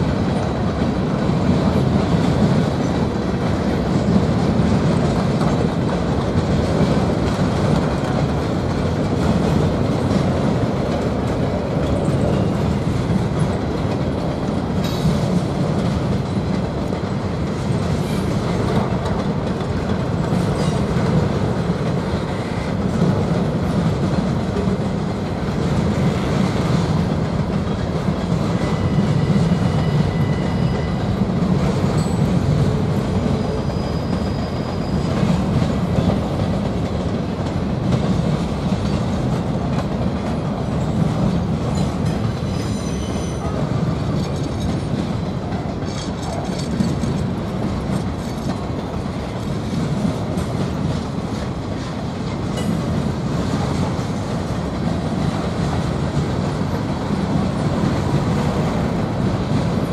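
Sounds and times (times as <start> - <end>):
freight train rumbling past: 0.0 - 59.9
high-pitched wheel squeals: 28.6 - 31.2, 33.2 - 35.5, 42.5 - 43.6.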